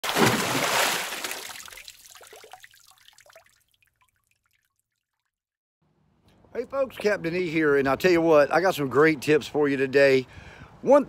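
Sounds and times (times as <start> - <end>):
water splash: 0.0 - 4.4
water trickling and dripping: 0.1 - 5.4.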